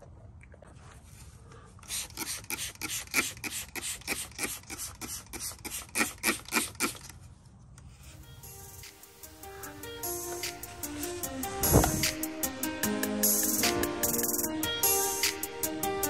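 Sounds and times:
spray bottle hisses: 1.8s - 7.1s, 7.9s - 12.6s, 13.2s - 15.6s.

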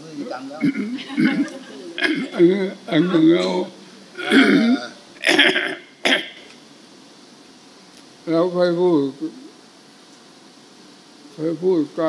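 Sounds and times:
elderly man clearing his throat: 0.6s - 2.8s, 3.4s - 6.4s
man coughing: 0.6s - 2.8s, 3.4s - 6.4s.

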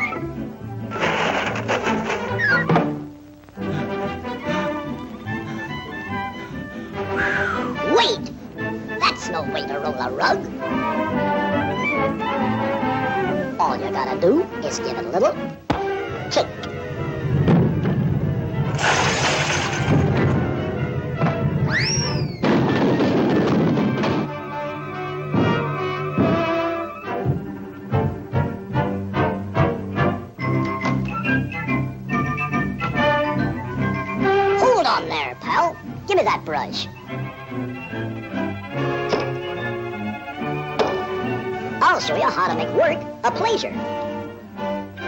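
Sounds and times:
noisy burst: 0.5s - 7.8s, 16.8s - 24.8s
sharp knock: 1.0s - 2.9s
cartoon orchestral music: 3.6s - 17.4s, 24.0s - 45.0s
whistle-like glide: 7.1s - 7.7s, 21.7s - 22.4s.

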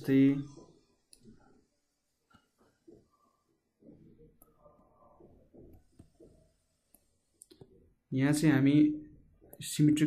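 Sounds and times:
stylus tapping on tablet: 5.6s - 7.8s.

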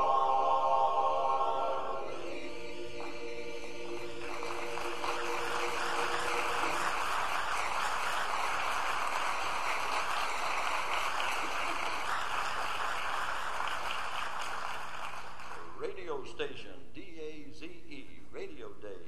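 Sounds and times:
male chorus holding chord: 0.0s - 7.8s
audience applause: 3.8s - 15.8s.

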